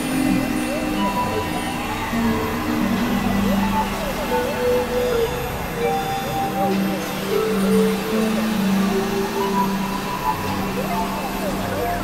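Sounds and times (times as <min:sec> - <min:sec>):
experimental electronic music: 0:00.0 - 0:12.0.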